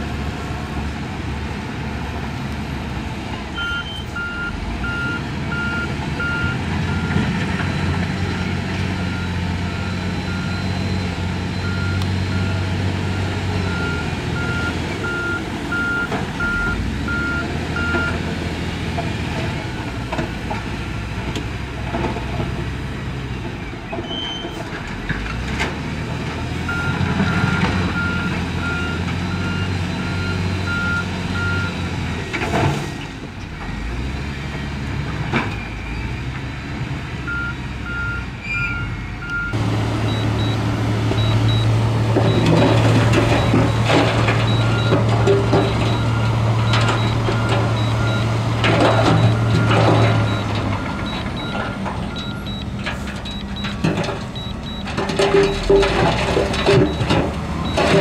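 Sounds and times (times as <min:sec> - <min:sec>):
diesel engines running: 0:00.0 - 0:58.0
reversing alarm beeping: 0:03.6 - 0:08.0, 0:09.0 - 0:18.2, 0:26.7 - 0:31.9, 0:37.3 - 0:55.9, 0:56.6 - 0:58.0.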